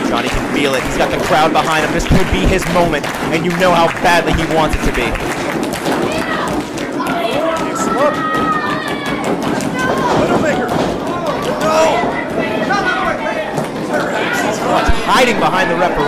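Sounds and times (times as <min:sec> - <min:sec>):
crowd shouting and cheering: 0:00.0 - 0:16.0.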